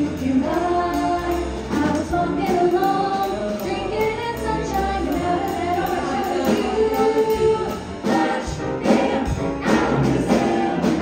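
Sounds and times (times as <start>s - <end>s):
choir singing in harmony: 0.0s - 11.0s
drum kit: 0.0s - 11.0s
piano: 0.0s - 11.0s.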